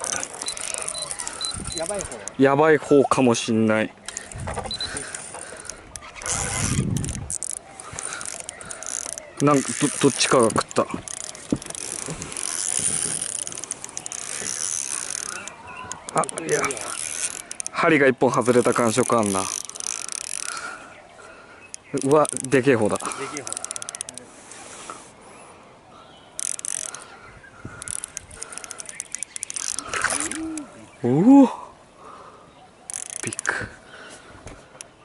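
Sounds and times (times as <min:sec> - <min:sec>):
fishing reel winding: 0:00.0 - 0:02.4, 0:04.1 - 0:20.8, 0:21.7 - 0:24.3, 0:26.4 - 0:27.1, 0:27.7 - 0:30.6, 0:32.9 - 0:33.6.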